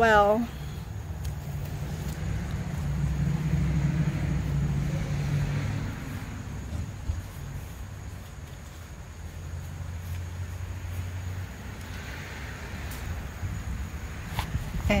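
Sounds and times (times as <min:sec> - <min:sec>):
vehicle passing by: 0:00.1 - 0:15.0.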